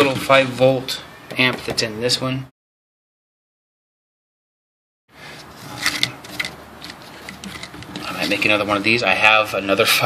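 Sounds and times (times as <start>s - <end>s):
steady background hiss: 5.2s - 10.0s
cable clicking and rubbing: 5.6s - 8.6s.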